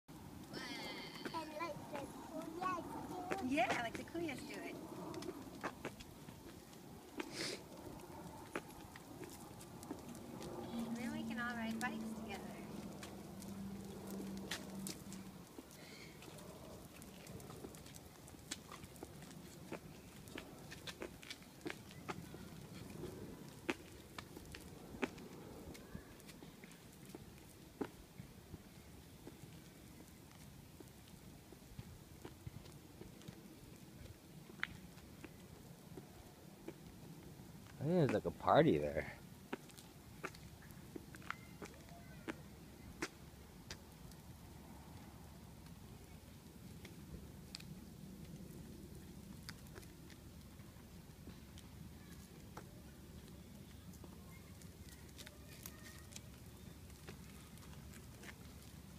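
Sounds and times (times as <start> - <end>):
small wheels rolling on concrete: 0.1 - 58.9
footsteps on concrete: 1.0 - 38.3, 39.5 - 44.2.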